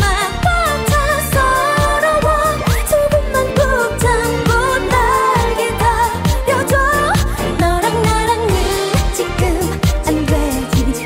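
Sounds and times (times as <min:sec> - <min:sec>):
instrumental accompaniment with beat: 0:00.0 - 0:11.0
woman singing pop song: 0:00.0 - 0:11.0.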